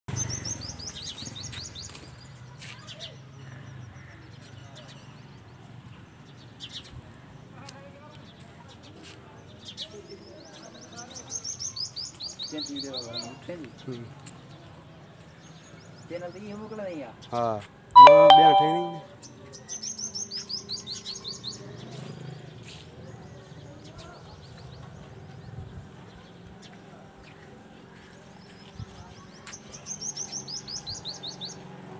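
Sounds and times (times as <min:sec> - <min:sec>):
songbird chirping: 0:18.0 - 0:19.2.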